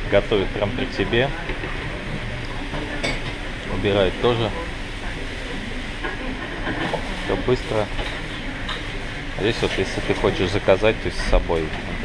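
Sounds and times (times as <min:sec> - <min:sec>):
kitchen room rumble and hiss: 0:00.0 - 0:12.0.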